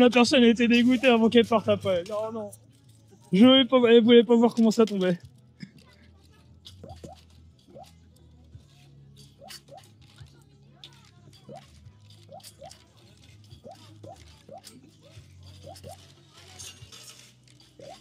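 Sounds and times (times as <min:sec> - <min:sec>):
faint background music: 0:00.0 - 0:18.0
tokens dropping clicks: 0:06.2 - 0:18.0.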